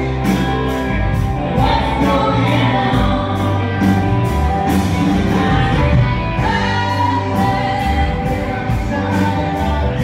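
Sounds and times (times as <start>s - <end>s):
live country band playing: 0.0s - 10.0s
person singing: 1.4s - 10.0s.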